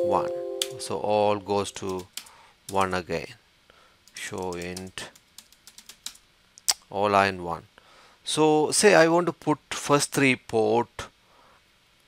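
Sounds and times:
computer keyboard typing: 1.8 - 2.8, 4.1 - 6.2.

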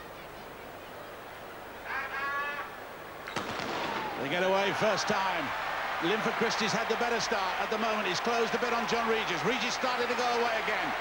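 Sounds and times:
stadium crowd noise: 0.0 - 11.0.

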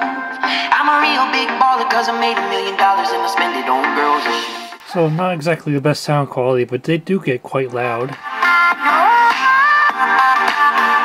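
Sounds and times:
electronic pop song on laptop speakers: 0.0 - 5.5, 8.0 - 11.0.

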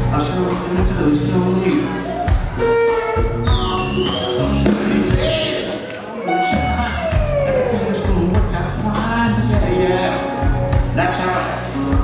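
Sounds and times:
drum kit beat: 0.0 - 12.0
live rock band playing: 0.0 - 12.0.

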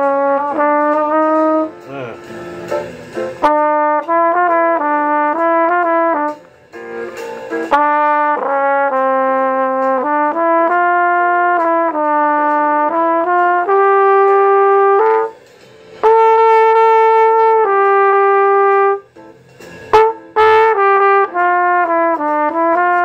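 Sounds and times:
flugelhorn solo: 0.0 - 1.9, 3.4 - 6.4, 7.7 - 15.4, 16.0 - 19.1, 19.9 - 23.0.

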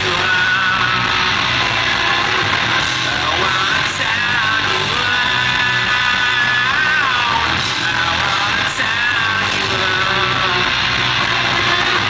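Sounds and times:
electric guitar: 0.0 - 12.0
live rock band playing: 0.0 - 12.0.

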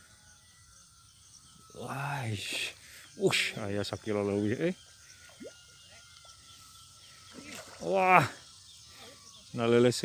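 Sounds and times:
thin steady high tone: 0.0 - 10.0.

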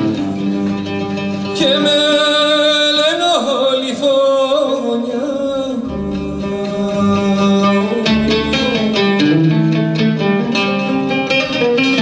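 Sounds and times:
plucked lute: 0.0 - 12.0.

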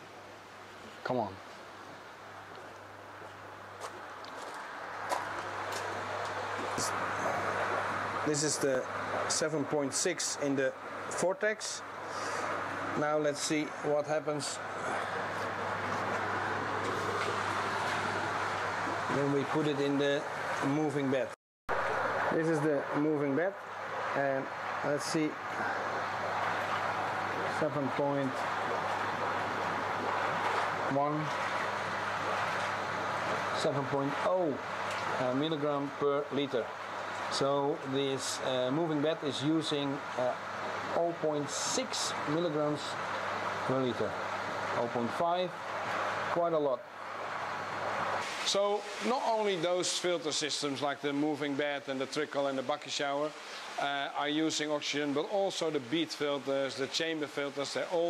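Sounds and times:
running water rushing hiss: 0.0 - 58.0
steady low hum: 0.0 - 58.0.

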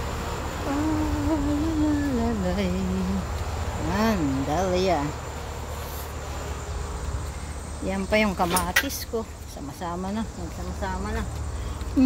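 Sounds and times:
crickets droning: 0.0 - 12.0.

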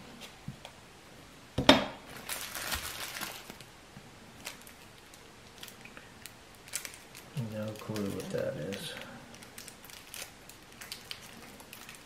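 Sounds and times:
packaging crinkling: 2.1 - 3.7, 4.4 - 12.0.

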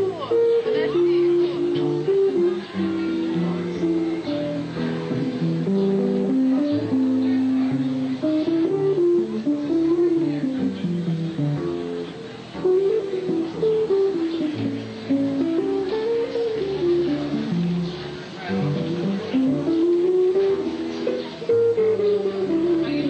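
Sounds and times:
guitar: 0.0 - 23.0
upright bass: 0.0 - 23.0.

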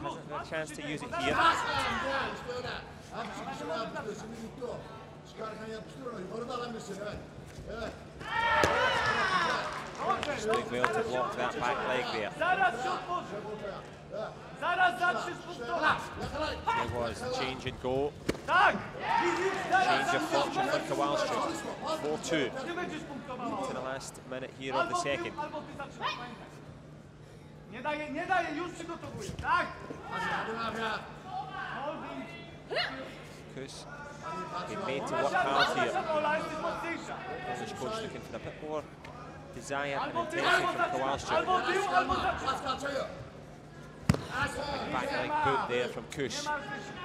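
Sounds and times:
loud shout: 8.2 - 9.9, 18.5 - 20.5.

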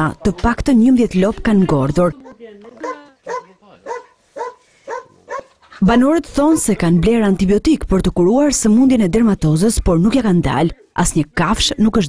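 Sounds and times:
dog barking: 2.2 - 5.6.

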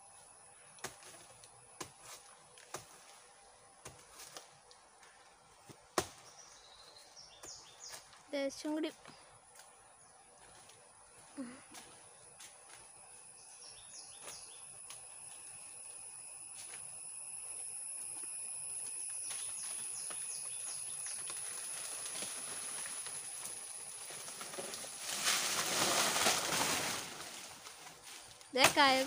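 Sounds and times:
high insect drone: 0.0 - 29.0
faint bird chirps: 13.1 - 14.8
banana leaves rustling: 19.2 - 29.0
plant falling with leaf crash: 24.1 - 27.8.

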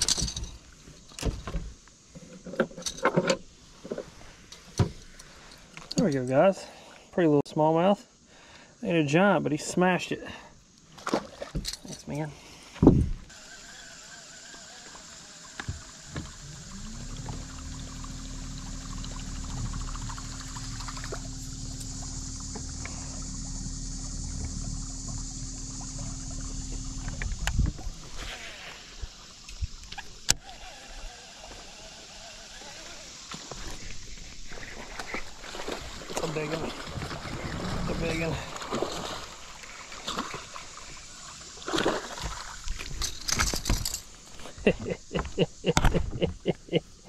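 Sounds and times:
electric trolling motor whine: 13.2 - 43.1.

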